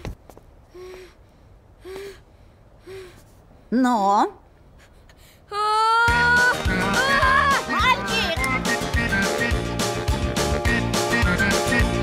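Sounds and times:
person gasping: 0:00.7 - 0:03.3.

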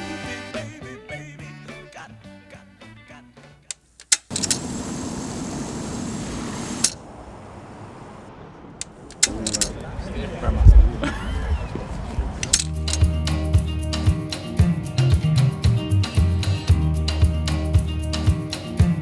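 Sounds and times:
music playing: 0:00.0 - 0:03.6, 0:12.5 - 0:19.0
clicks: 0:03.7 - 0:04.6, 0:08.8 - 0:09.8, 0:12.4 - 0:13.1
steady ambient hiss: 0:03.7 - 0:12.7
people chatting: 0:09.1 - 0:12.6
guitar music: 0:12.7 - 0:19.0.

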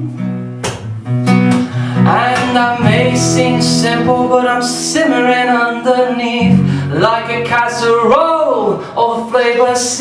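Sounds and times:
sustained bass notes: 0:00.0 - 0:08.1
acoustic guitar strumming: 0:00.0 - 0:10.0
person singing: 0:01.7 - 0:10.0.

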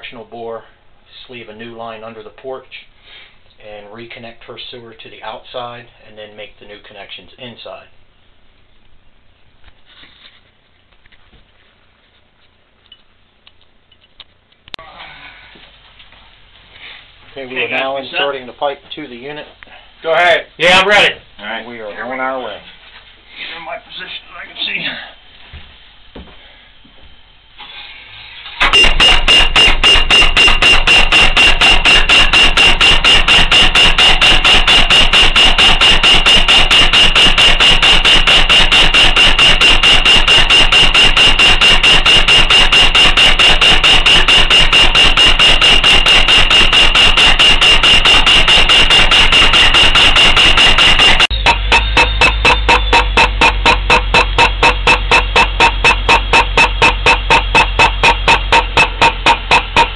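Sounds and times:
pneumatic tool hammering: 0:28.5 - 0:59.9
deep hum: 0:28.6 - 0:59.9
high whistle: 0:28.6 - 0:59.9.

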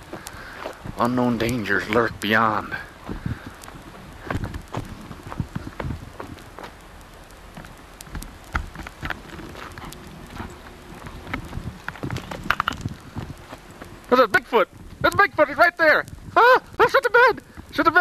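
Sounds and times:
low outdoor background: 0:00.0 - 0:18.0.

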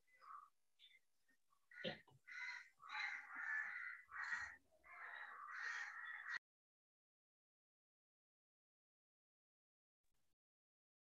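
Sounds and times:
bird harsh calls: 0:00.0 - 0:01.0, 0:01.7 - 0:06.4.

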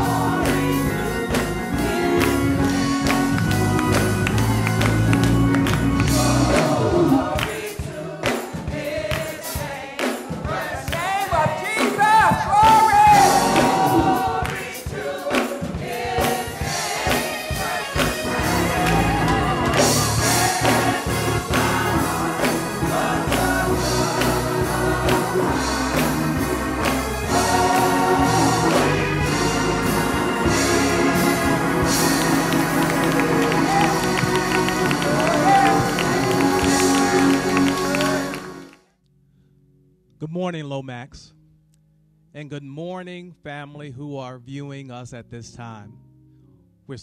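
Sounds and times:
gospel choir singing: 0:00.0 - 0:38.8
instrumental accompaniment: 0:00.0 - 0:38.9
hands clapping on the beat: 0:01.3 - 0:18.2, 0:18.8 - 0:21.8, 0:22.4 - 0:27.3, 0:31.8 - 0:38.8
hands clapping: 0:02.2 - 0:08.4, 0:09.1 - 0:09.4, 0:32.2 - 0:38.8.

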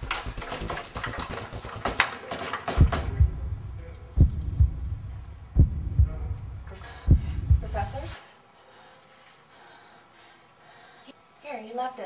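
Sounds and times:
heartbeat double thumps: 0:02.8 - 0:08.1
low hum: 0:02.8 - 0:08.2.

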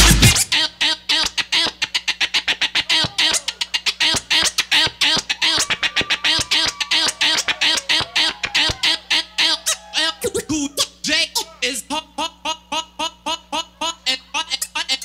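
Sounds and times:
turntable scratching: 0:00.0 - 0:00.6, 0:02.5 - 0:08.9.

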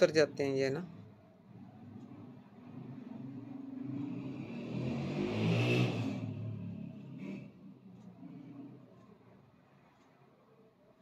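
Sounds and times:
motor vehicle passing by: 0:00.9 - 0:10.0.

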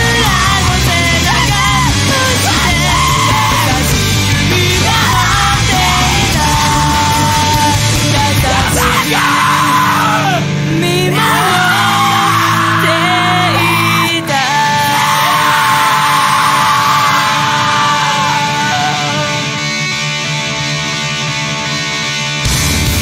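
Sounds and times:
yelled vocals: 0:00.0 - 0:19.6
distorted rock instruments: 0:00.0 - 0:23.0.

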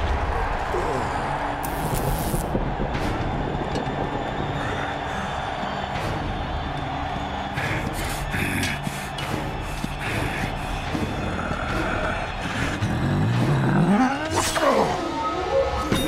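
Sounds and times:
action background music: 0:00.0 - 0:16.0.

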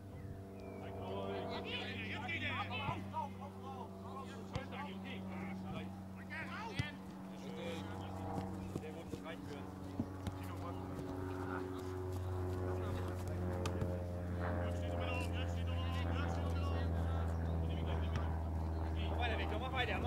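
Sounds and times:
steady low hum: 0:00.0 - 0:20.0
distant players shouting: 0:00.6 - 0:20.0
ball being kicked: 0:13.1 - 0:14.0.

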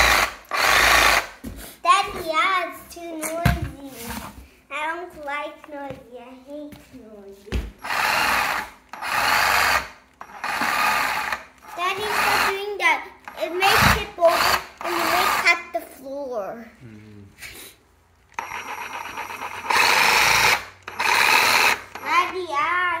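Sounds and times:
reciprocating saw running free: 0:00.0 - 0:01.3, 0:07.8 - 0:12.6, 0:13.3 - 0:15.5, 0:18.4 - 0:22.1.

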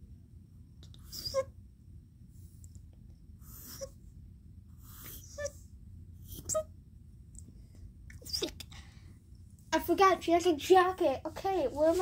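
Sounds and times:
person breathing: 0:08.7 - 0:09.4.

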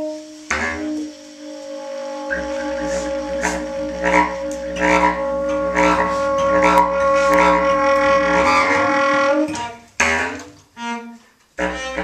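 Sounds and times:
low drone: 0:00.0 - 0:09.6
bass clarinet: 0:00.0 - 0:10.4, 0:11.6 - 0:12.0
tenor saxophone: 0:00.0 - 0:10.5
bowed cello: 0:00.0 - 0:12.0.

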